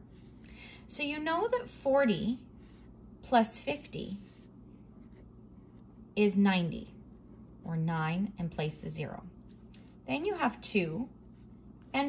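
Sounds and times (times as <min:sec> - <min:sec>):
pen scratching on paper: 0:00.0 - 0:00.5, 0:02.6 - 0:07.8, 0:08.6 - 0:12.0.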